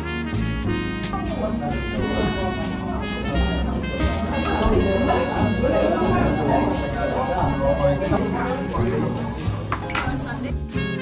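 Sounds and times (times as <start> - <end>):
background music: 0.0 - 11.0
voices talking: 0.8 - 10.6
cutlery clinking on dishes: 9.7 - 10.3.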